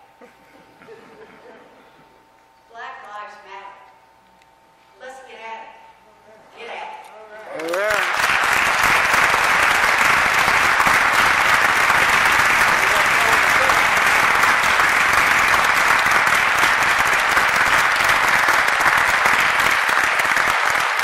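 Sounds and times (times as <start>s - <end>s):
audience applauding: 7.6s - 21.0s.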